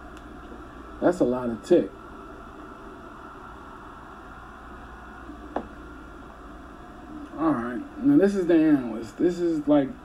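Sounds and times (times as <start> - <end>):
background hiss and hum: 0.0 - 10.0.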